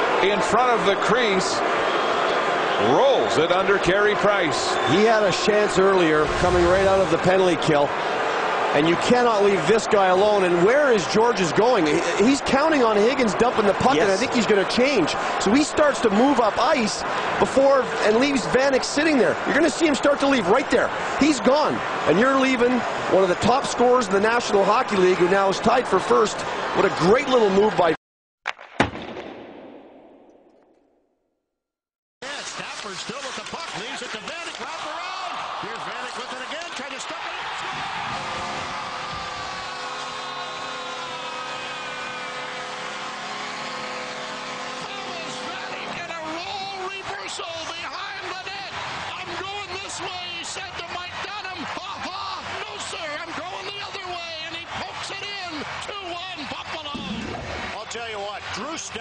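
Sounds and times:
commentator speaking: 0:08.8 - 0:28.0.

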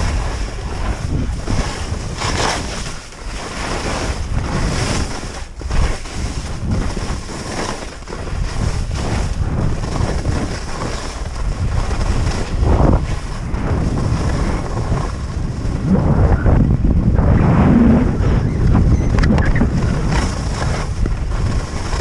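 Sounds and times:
skis scraping on snow: 0:00.0 - 0:22.0
wind on camera microphone: 0:00.0 - 0:22.0.

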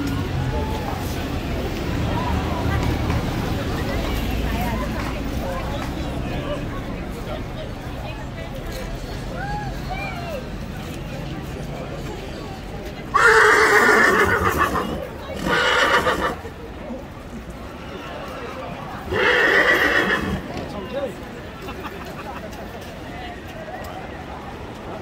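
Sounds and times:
horse whinnying: 0:13.1 - 0:16.4, 0:19.1 - 0:20.4.

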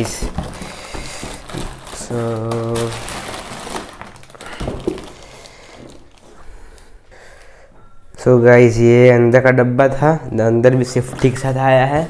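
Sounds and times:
cardboard and plastic rustling: 0:00.0 - 0:06.9, 0:10.8 - 0:12.0.

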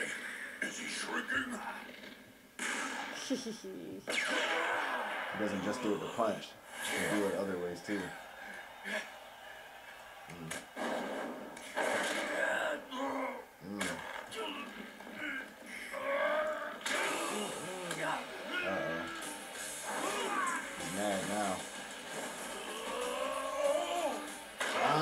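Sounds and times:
character voices: 0:12.0 - 0:21.7.

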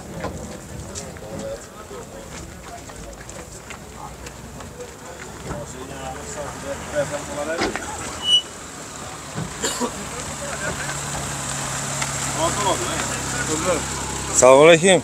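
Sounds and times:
chatter of voices: 0:00.0 - 0:15.0
car engine running: 0:06.7 - 0:15.0.

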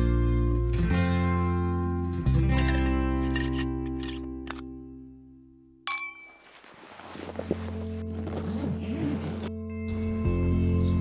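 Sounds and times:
guitar music: 0:00.0 - 0:05.4, 0:07.4 - 0:11.0
sharp ringing clang: 0:05.9 - 0:06.4.

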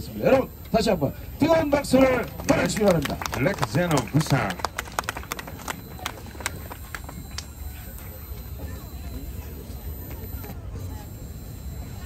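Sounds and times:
audience hand claps: 0:02.0 - 0:07.6.

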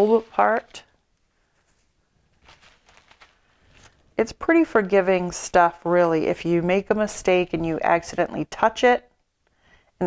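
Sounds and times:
plastic bag rustling: 0:00.0 - 0:04.2.

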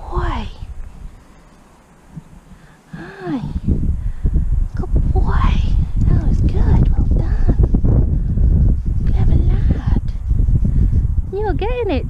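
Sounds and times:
wind and handling rumble: 0:00.0 - 0:12.0.

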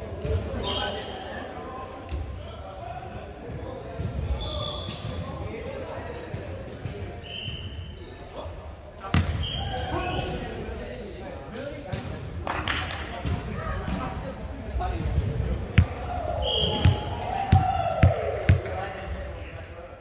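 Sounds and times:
players' voices: 0:00.0 - 0:20.0
shoes squealing: 0:09.4 - 0:11.6, 0:13.4 - 0:15.1, 0:16.4 - 0:19.5
volleyball hits echoing: 0:15.0 - 0:18.8.

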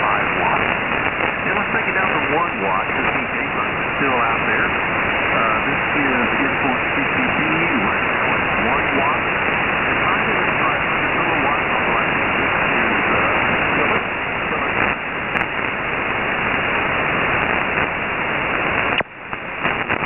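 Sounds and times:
faint radio voice: 0:00.0 - 0:00.7, 0:01.4 - 0:15.0
radio band noise hiss: 0:00.0 - 0:20.0.

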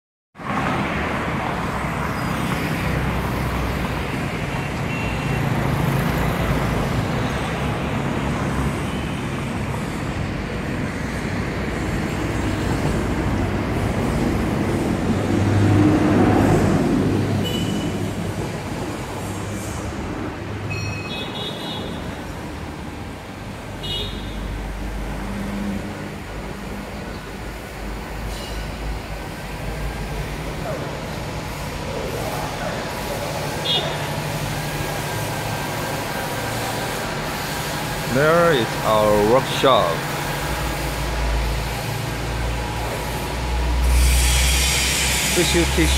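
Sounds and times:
road traffic rumbling: 0:00.4 - 0:45.9.

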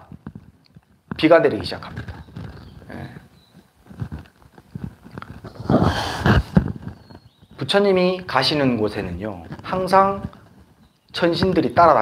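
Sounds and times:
microphone handling rustle: 0:00.0 - 0:12.0.

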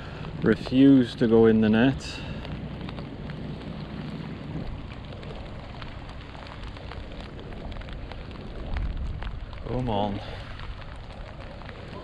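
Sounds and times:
drops ticking near microphone: 0:00.0 - 0:12.0
steady rain falling: 0:00.0 - 0:12.0.

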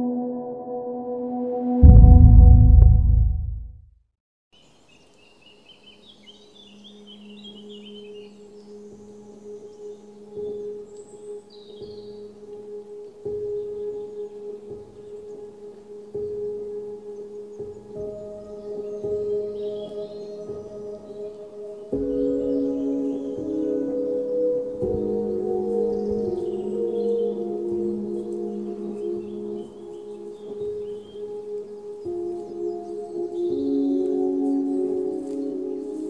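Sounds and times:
ambient drone music: 0:00.0 - 0:03.8, 0:06.4 - 0:36.0
birds chirping faintly: 0:04.6 - 0:36.0.

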